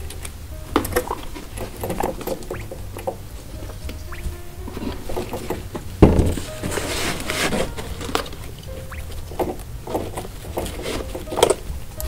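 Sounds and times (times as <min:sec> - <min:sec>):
guinea pigs rustling: 0:00.0 - 0:12.0
guinea pig squeak: 0:03.8 - 0:04.6, 0:08.6 - 0:09.6.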